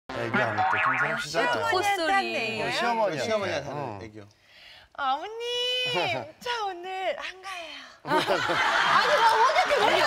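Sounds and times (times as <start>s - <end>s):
comic wobbling sound effect: 0.1s - 1.8s
person speaking: 0.1s - 3.4s.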